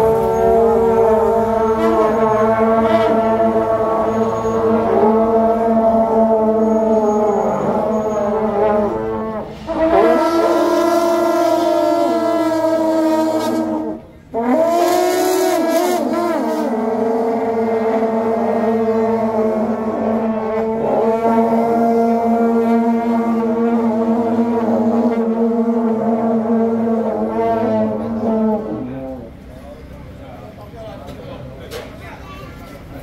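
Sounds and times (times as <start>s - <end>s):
brass horns blowing long notes: 0.0s - 29.5s.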